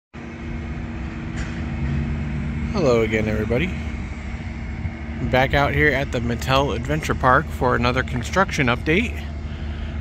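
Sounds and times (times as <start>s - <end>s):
machine droning hum: 0.2s - 10.0s.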